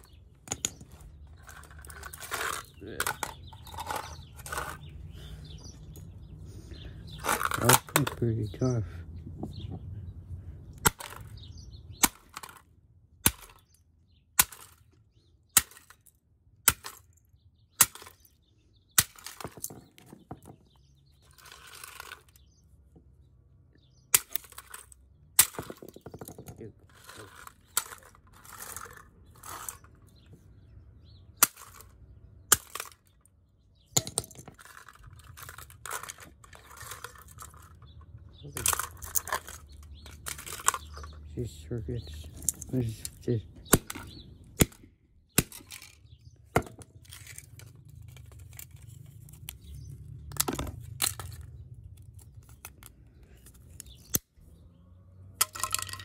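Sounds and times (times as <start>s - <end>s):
hammer smashing plastic on concrete: 17.8s - 18.3s, 25.4s - 26.4s, 32.5s - 33.1s
broken plastic pieces clattering: 24.2s - 30.0s, 34.0s - 37.9s, 38.5s - 41.2s, 55.4s - 56.0s.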